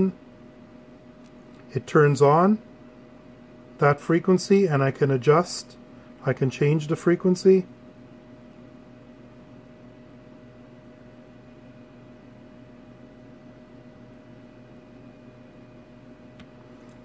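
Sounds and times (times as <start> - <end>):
background hum and hiss: 0.0 - 17.0.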